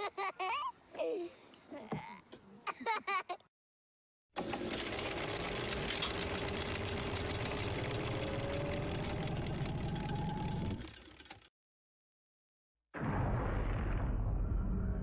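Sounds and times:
mechanical whirring clatter: 4.4s - 11.5s.

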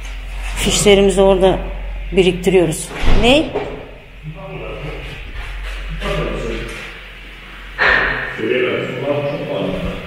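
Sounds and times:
indistinct talking in echoing hall: 0.0s - 10.0s
sharp knock: 7.8s - 8.4s.

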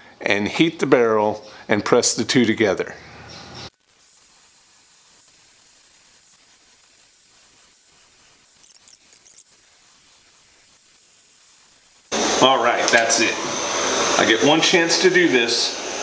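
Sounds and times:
torch flame hissing: 3.7s - 16.0s.

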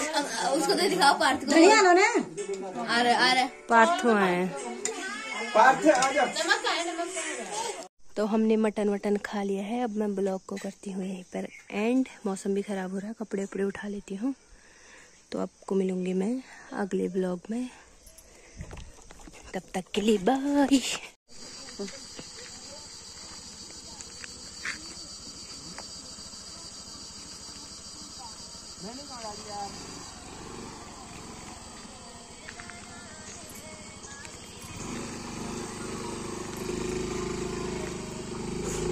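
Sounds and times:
woman speaking: 19.5s - 22.8s
scooter engine pulling away: 21.3s - 38.9s.

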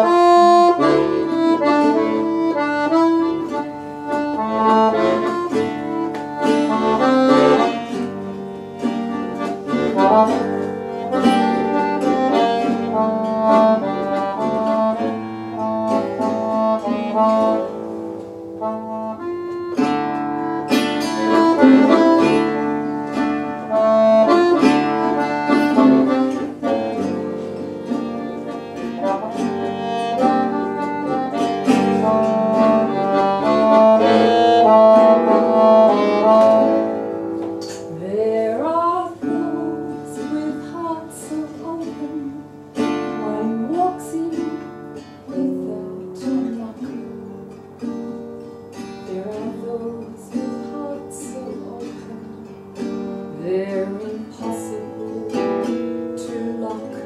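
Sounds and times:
acoustic guitar picking: 0.0s - 57.0s
piano accordion: 0.0s - 57.0s.

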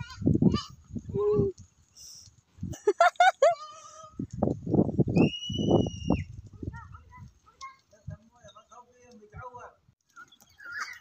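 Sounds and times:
high steady whistle: 5.1s - 6.3s.

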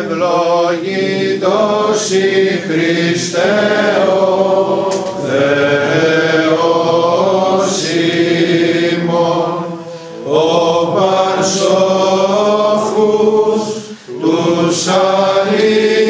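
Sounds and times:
congregation chanting a hymn: 0.0s - 16.0s.

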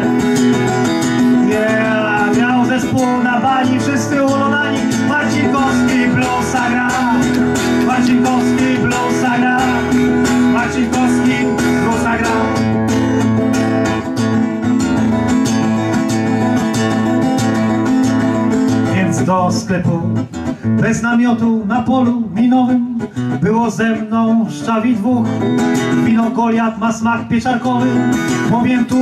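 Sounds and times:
person singing: 0.0s - 13.4s
acoustic guitar strumming: 0.0s - 29.0s.

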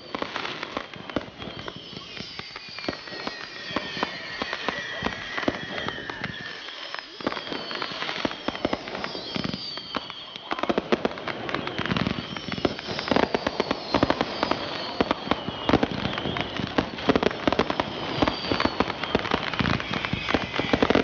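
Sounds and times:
fireworks popping and crackling: 0.0s - 21.0s
fireworks whistling: 0.0s - 21.0s.

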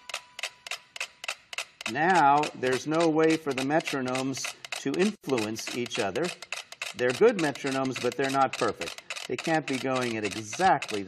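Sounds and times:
metronomes ticking out of sync: 0.0s - 11.0s.

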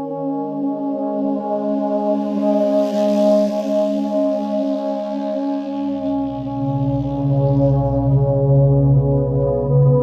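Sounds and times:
soothing instrumental music: 0.0s - 10.0s.

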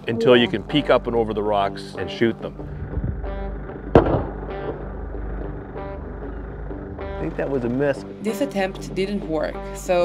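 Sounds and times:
shotgun shot: 3.9s - 4.5s.

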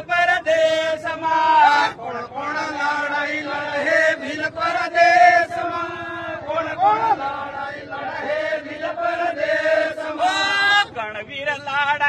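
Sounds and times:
men chanting a song: 0.0s - 11.1s.

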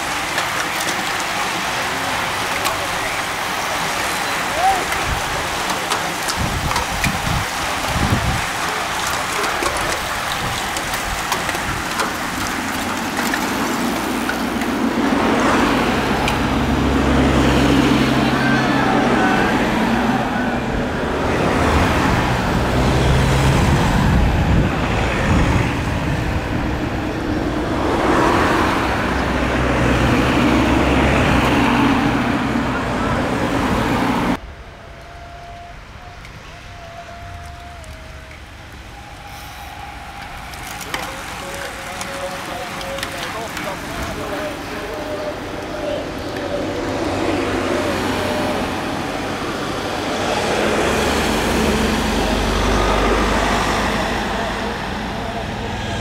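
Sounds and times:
spectators' voices: 0.0s - 23.6s, 28.9s - 56.0s
bicycles passing on tarmac: 0.0s - 56.0s
car engines humming: 0.0s - 56.0s.

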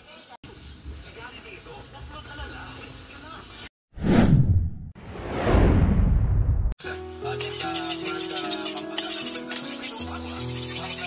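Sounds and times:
whoosh sinking in pitch: 4.0s - 6.7s.

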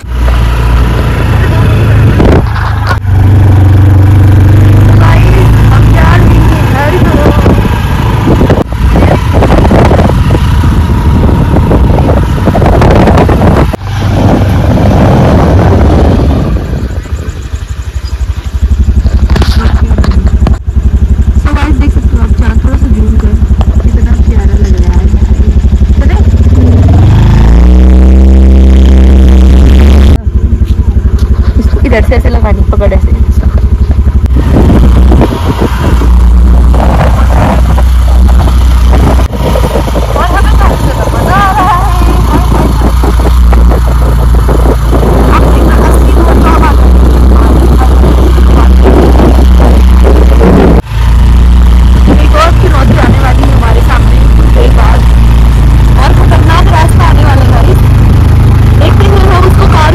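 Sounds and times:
motorbike engine running: 0.0s - 59.9s
wind rush on microphone: 0.0s - 59.9s.

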